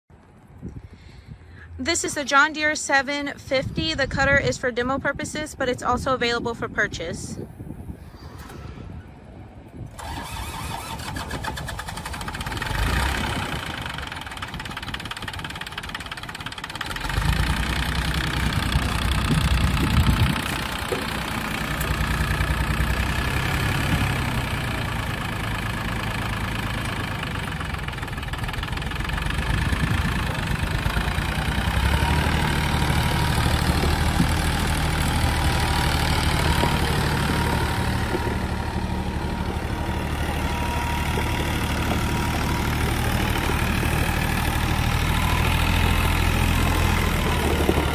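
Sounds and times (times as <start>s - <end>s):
tractor diesel engine running: 0.1s - 47.9s.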